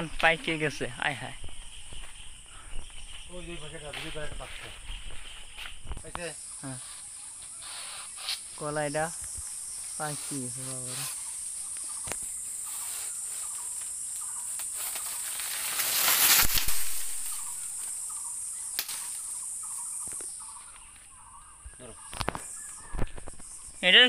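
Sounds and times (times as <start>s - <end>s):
high insect drone: 0.0s - 24.0s
stalk snapping: 14.5s - 17.9s, 18.7s - 19.2s
plant leaves rustling swish: 14.6s - 17.9s.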